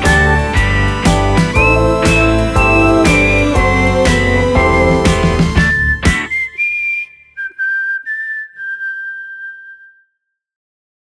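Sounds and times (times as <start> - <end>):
whistled melody: 0.0 - 10.4.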